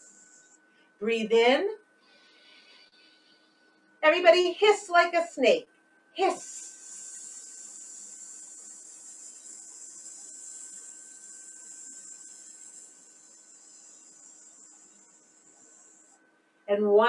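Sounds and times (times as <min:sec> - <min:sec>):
woman hissing through teeth: 0:06.2 - 0:15.0.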